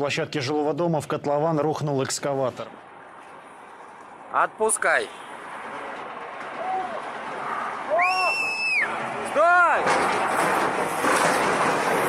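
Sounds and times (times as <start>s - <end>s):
rough rush of noise: 2.5s - 12.0s.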